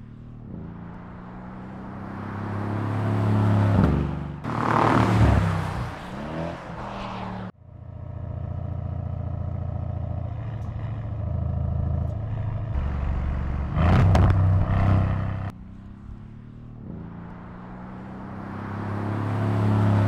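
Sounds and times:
car engine accelerating hard: 0:12.1 - 0:15.5.

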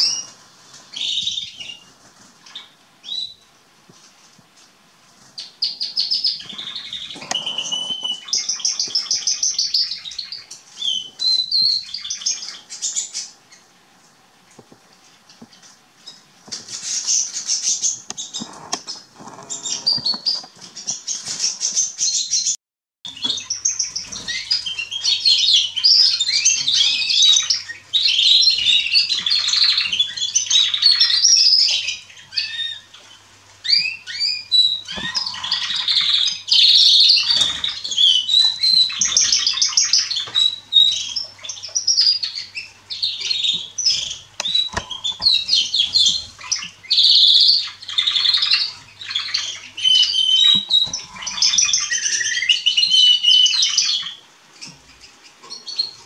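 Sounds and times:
canaries singing warbles and trills: 0:00.0 - 0:56.0.

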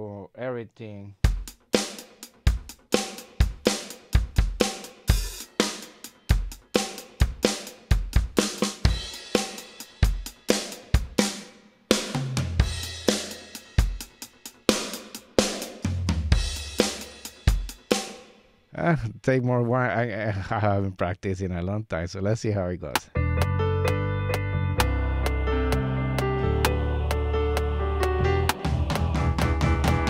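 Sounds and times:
drum kit groove: 0:01.2 - 0:18.4, 0:22.9 - 0:30.0.

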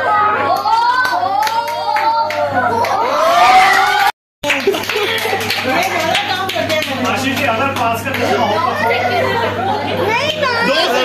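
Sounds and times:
group chatter: 0:05.6 - 0:11.0.

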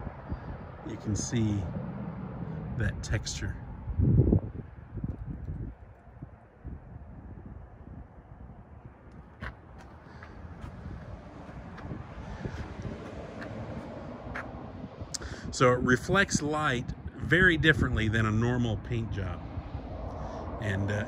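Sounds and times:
outdoor background noise: 0:00.0 - 0:21.0
wind rumbling on microphone: 0:00.0 - 0:21.0.

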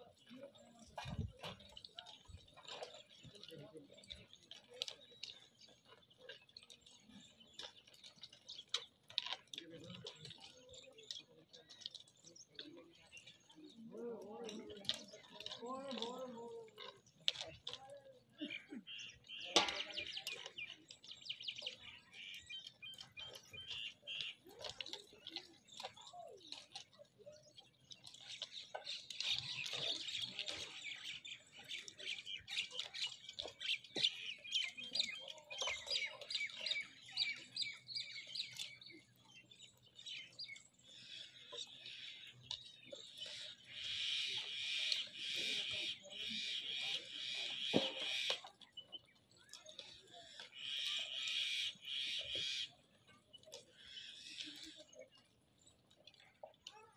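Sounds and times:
small birds chirping: 0:00.0 - 0:56.9.

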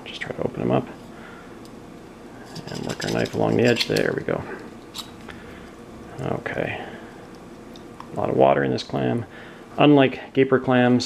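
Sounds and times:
low room hiss: 0:00.0 - 0:11.0.

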